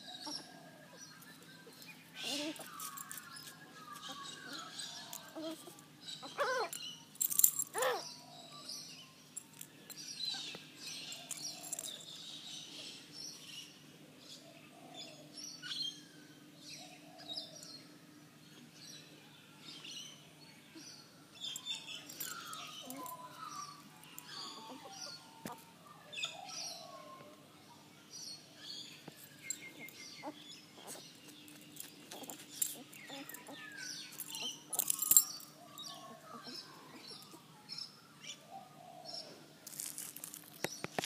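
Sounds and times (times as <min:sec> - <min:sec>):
faint birdsong: 0:00.0 - 0:41.0.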